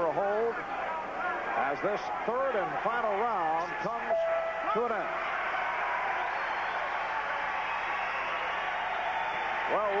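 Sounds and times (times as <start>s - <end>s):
crowd shouting: 0.6s - 10.0s.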